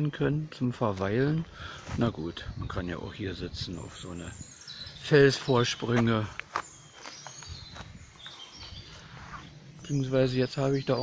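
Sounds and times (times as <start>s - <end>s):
distant birds chirping: 0.0s - 11.0s.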